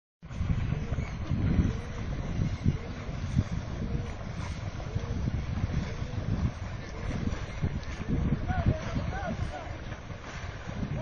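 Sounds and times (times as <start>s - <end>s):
wind buffeting microphone: 0.2s - 11.0s.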